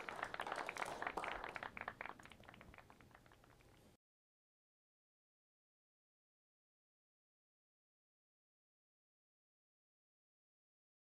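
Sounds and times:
audience applause: 0.0s - 3.6s.

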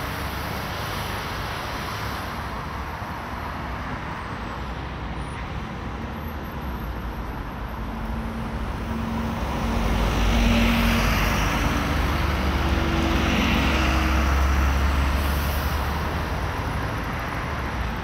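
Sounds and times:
road traffic passing: 0.0s - 18.0s.

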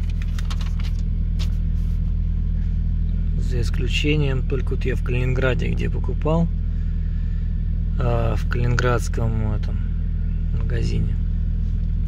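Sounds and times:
car cabin low rumble: 0.0s - 12.0s.

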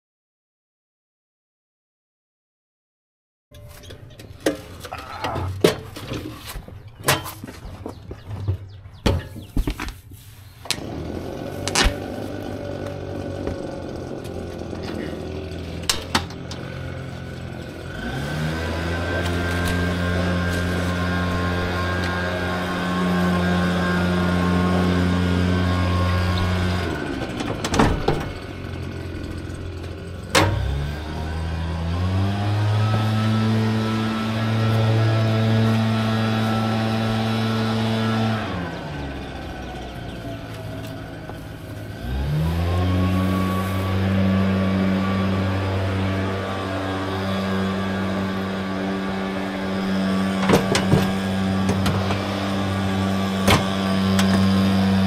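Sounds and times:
engine revving: 10.7s - 55.0s.

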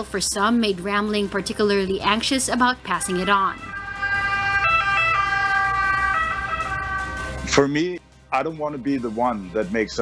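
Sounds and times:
two-tone ambulance siren: 2.9s - 7.6s.

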